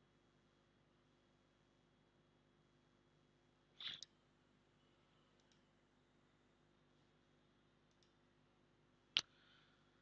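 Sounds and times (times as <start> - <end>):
computer mouse clicks: 3.8 - 4.2, 5.4 - 5.7, 7.9 - 8.2.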